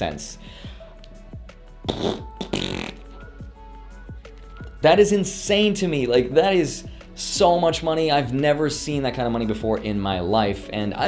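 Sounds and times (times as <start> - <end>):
background music with steady beat: 0.0 - 11.0
man blowing a raspberry: 1.8 - 3.2.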